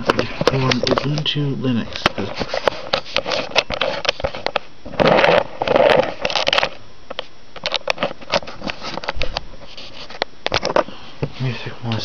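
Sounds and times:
rustling scrape: 2.0 - 6.7, 8.0 - 10.2.

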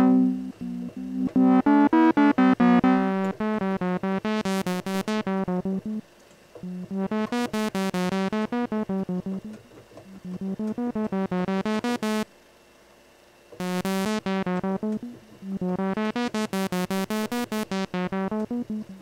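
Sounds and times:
buzzy synthesizer notes: 0.0 - 6.0, 6.6 - 12.3, 13.6 - 19.0.

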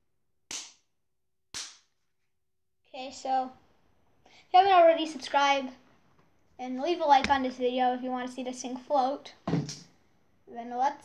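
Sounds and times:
sharp snapping sounds: 0.5 - 0.9, 1.5 - 1.9.

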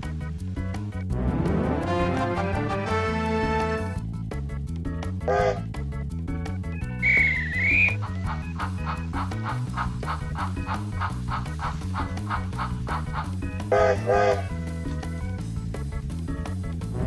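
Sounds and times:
upbeat music with steady beat: 0.0 - 17.0
loud pitched toots: 7.0 - 8.0
warbling whistle sound effect: 7.0 - 8.0.

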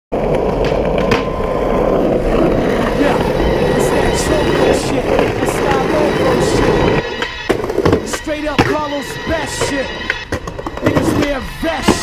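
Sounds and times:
skateboard wheels rolling on asphalt: 0.1 - 12.0
skateboard clacks: 0.2 - 12.0.

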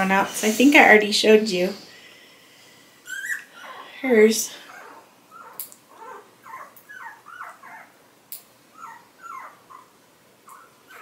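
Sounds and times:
puppy squeaking: 3.1 - 3.8, 4.7 - 8.0, 8.7 - 11.0.

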